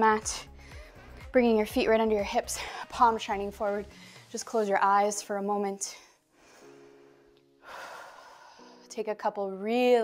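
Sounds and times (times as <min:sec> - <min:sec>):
soft background music: 0:00.0 - 0:10.0
woman breathing in: 0:03.9 - 0:04.3, 0:06.1 - 0:08.9.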